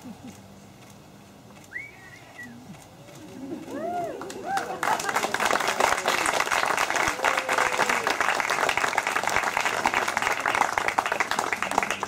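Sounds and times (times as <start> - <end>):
people cheering: 3.1 - 12.0
high whoop: 3.2 - 5.1, 6.9 - 8.3.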